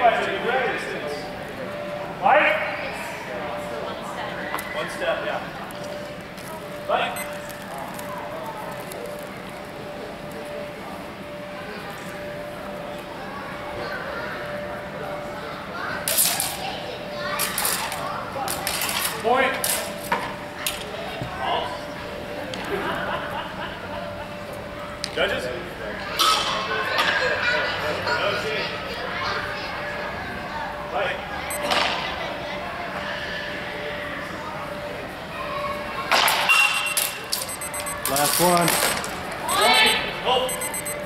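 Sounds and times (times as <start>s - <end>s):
voices in background: 0.0s - 41.0s
voices calling out: 36.6s - 41.0s.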